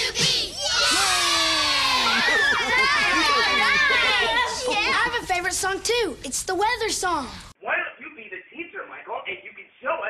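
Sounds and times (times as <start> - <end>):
children cheering and shouting: 0.0 - 5.3.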